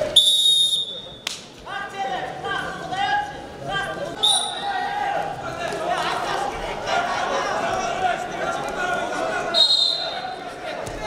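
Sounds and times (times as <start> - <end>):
voices calling out in arena: 0.0 - 11.0.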